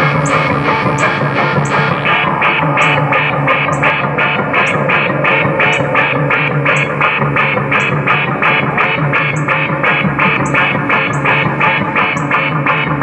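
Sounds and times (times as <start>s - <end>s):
high tick: 0.0s - 12.4s
low synth drone: 0.0s - 13.0s
pulsed synthesizer pattern: 0.0s - 13.0s.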